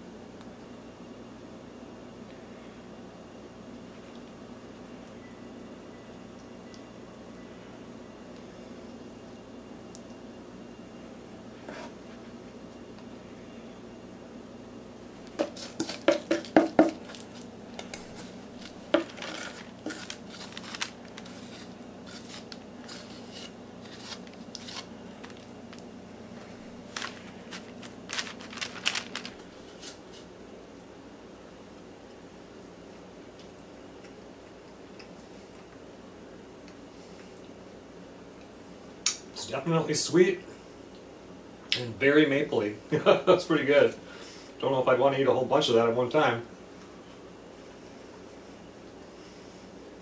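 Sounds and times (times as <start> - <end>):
metal spoon scraping steel bowl: 19.0 - 20.5, 21.2 - 24.9.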